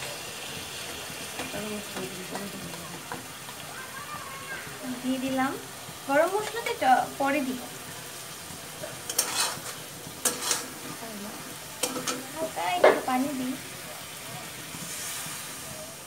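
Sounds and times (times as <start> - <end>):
chicken sizzling in oil: 0.0 - 16.0
metal spatula scraping pan: 8.8 - 11.0.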